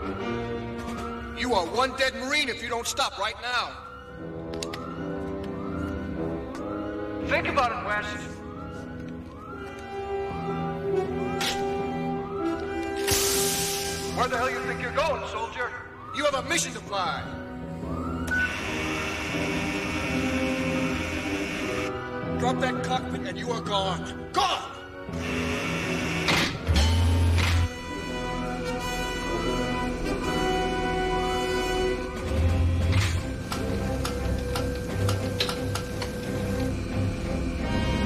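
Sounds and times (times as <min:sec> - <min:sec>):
background music with held notes: 0:00.0 - 0:38.0
gas venting hiss: 0:13.0 - 0:14.2.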